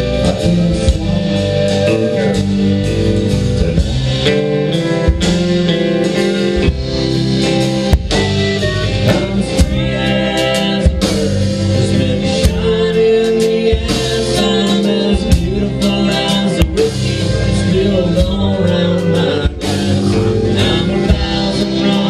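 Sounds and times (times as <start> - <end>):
country-rock band playing: 0.0 - 22.0.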